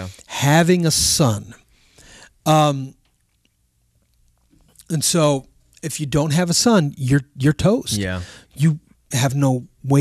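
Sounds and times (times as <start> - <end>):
man talking: 0.0 - 1.6, 2.4 - 3.0, 4.8 - 10.0
man breathing: 1.7 - 2.4, 8.2 - 8.6.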